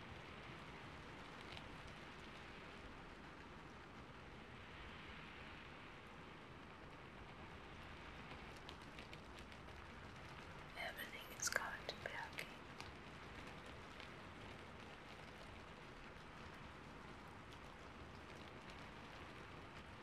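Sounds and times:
faint steady hiss: 0.0s - 20.0s
faint clicks: 1.2s - 2.4s
woman whispering softly: 10.8s - 12.6s.

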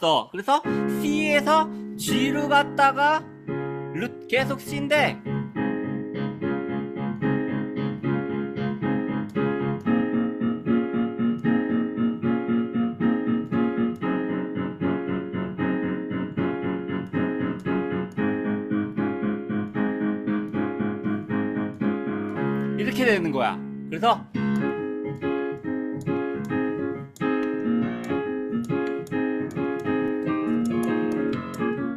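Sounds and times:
digital piano playing chords: 0.4s - 31.9s.

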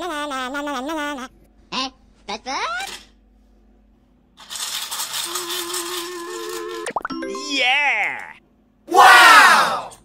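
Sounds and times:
cartoonish voice-like call: 0.0s - 2.9s, 6.0s - 9.9s
shaker-like rattle: 4.4s - 6.7s.

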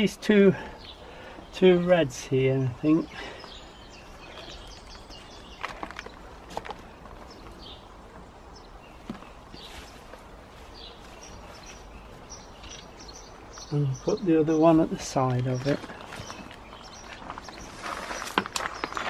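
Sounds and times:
birds chirping: 0.0s - 19.0s
soft knocks and rustles of planting: 4.3s - 8.3s, 8.9s - 19.0s.

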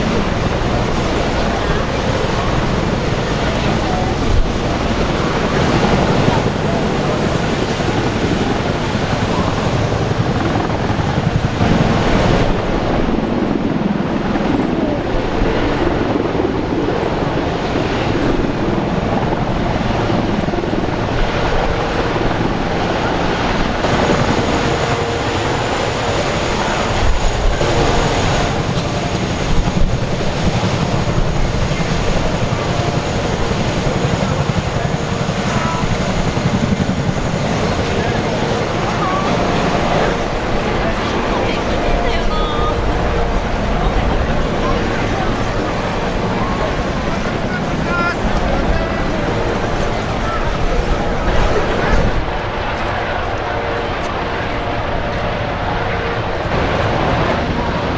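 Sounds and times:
helicopter rotor and turbine: 0.0s - 57.9s.

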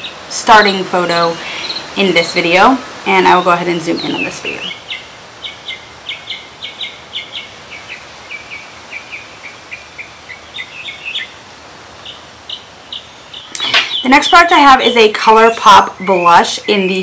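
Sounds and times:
small bird chirping: 3.3s - 11.4s, 12.0s - 14.5s.

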